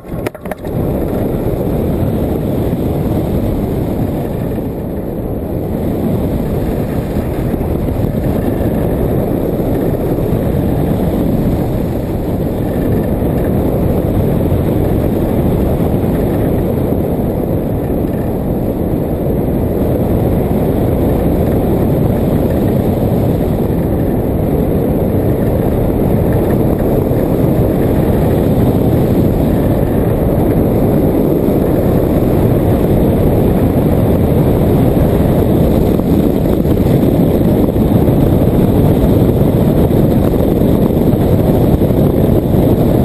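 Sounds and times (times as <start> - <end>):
wind noise on microphone: 0.0 - 43.0.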